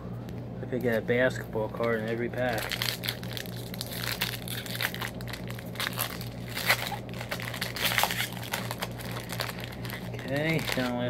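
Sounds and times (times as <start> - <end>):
low hum: 0.0 - 11.0
plastic wrapper crinkling: 1.6 - 11.0.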